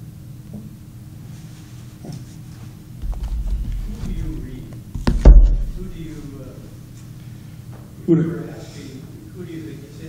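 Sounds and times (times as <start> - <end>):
light knocks: 3.0 - 6.4
microphone handling rumble: 3.0 - 6.6.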